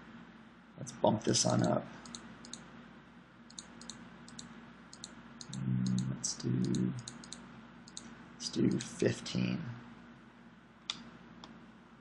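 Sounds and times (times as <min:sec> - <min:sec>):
faint steady hum: 0:00.0 - 0:12.0
computer mouse clicks: 0:01.6 - 0:02.7, 0:03.5 - 0:08.1.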